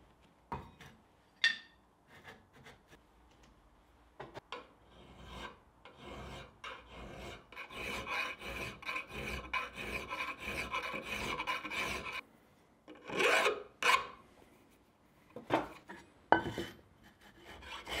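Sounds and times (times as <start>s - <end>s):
hand file rasping on metal: 4.8s - 12.2s, 13.0s - 14.2s, 17.0s - 18.0s.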